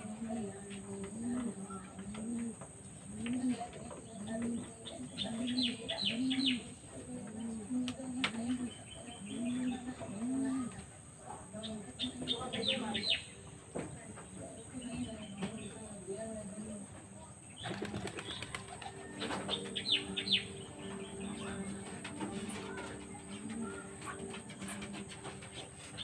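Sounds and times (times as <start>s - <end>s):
low bird coos: 0.0s - 10.9s, 17.6s - 26.0s.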